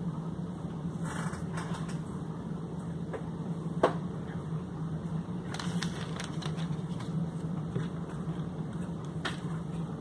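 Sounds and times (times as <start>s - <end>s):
low equipment hum: 0.0s - 10.0s.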